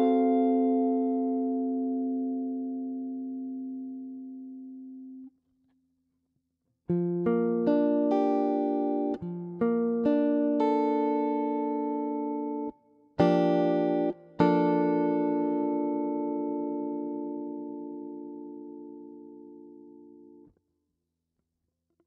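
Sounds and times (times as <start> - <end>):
electric guitar chord ringing: 0.0 - 5.2, 6.9 - 20.4.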